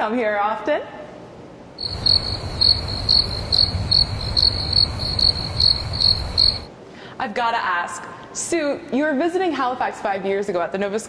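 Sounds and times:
crickets chirping: 1.8 - 6.7.

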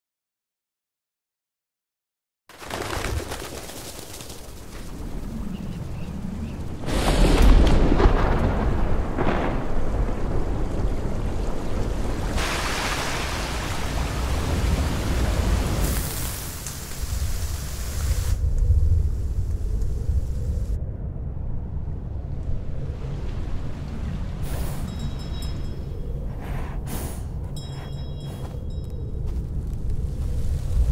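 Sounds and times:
heavy rain: 4.6 - 20.8
thunder: 4.8 - 16.3
deep low rumble: 17.8 - 30.9.

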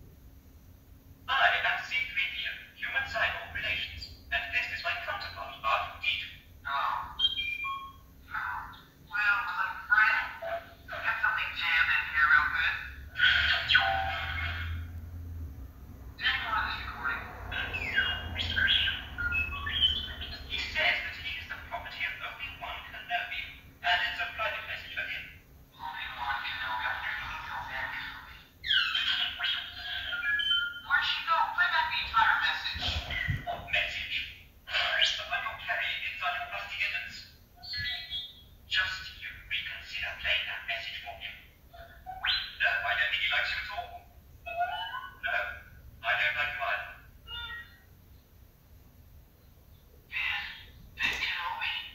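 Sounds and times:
tinny film dialogue from speakers: 0.3 - 51.9
robot beeping whistles: 7.2 - 8.0.

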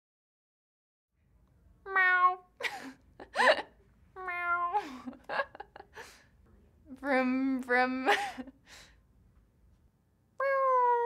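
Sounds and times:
woman imitating cat meow: 1.9 - 2.5, 4.2 - 4.9, 10.4 - 11.0.

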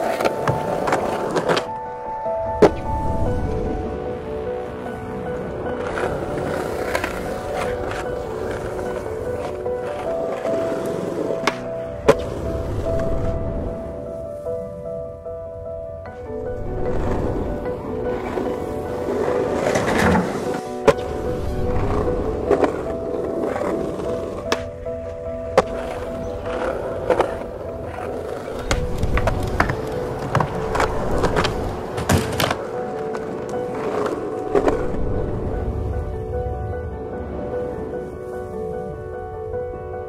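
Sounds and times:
skateboard clacks: 0.0 - 1.8, 5.8 - 13.1, 17.0 - 35.0
background music: 0.0 - 40.0
skateboard wheels rolling on paving: 0.0 - 40.0.

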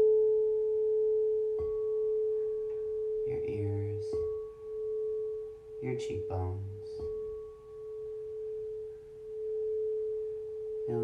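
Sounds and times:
singing bowl ringing: 0.0 - 11.0.

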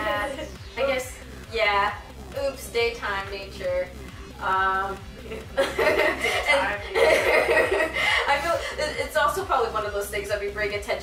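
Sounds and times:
young women laughing: 0.0 - 0.5, 5.3 - 9.1
young women talking: 0.0 - 5.0, 6.1 - 7.5, 8.2 - 11.0.

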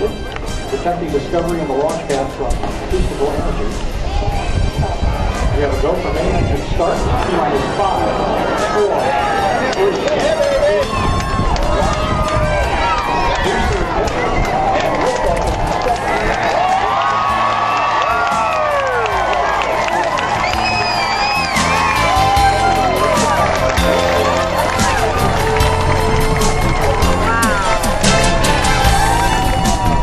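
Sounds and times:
crowd cheering and shouting: 2.9 - 30.0.

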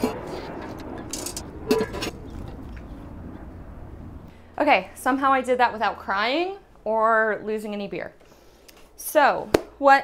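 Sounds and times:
steady low hum: 0.0 - 9.0.

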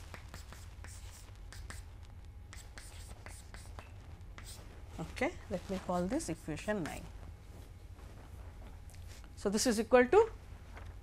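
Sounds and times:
chalk scratching on chalkboard: 0.0 - 1.9, 2.5 - 4.7
low room hum: 0.0 - 11.0.

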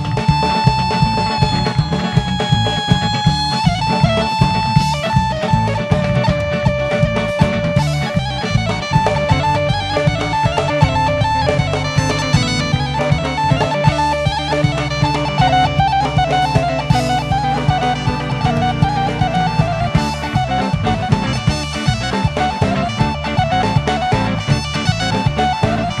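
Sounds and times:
folk band music: 0.0 - 26.0.

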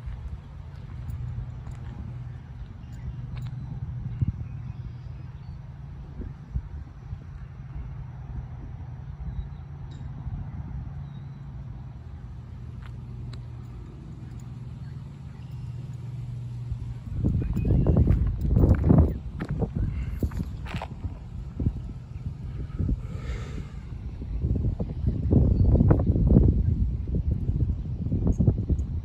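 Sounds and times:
steady low hum: 0.0 - 29.0
irregular low rumbling: 11.4 - 28.2.

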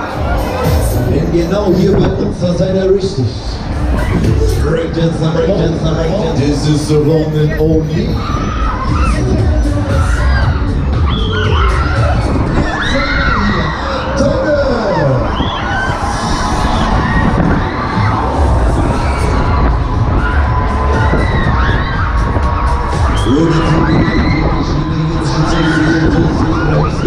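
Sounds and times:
riders screaming and shouting: 0.0 - 4.8, 5.8 - 27.0
loud fairground music: 0.0 - 27.0
steady low rumble: 0.0 - 27.0.

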